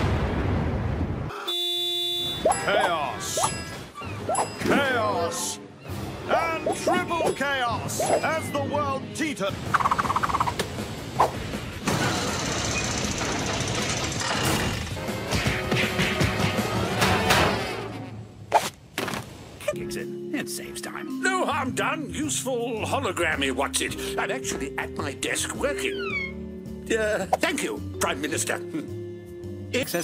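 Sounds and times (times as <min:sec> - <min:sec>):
cartoon machine rattling rumble: 0:11.8 - 0:15.0.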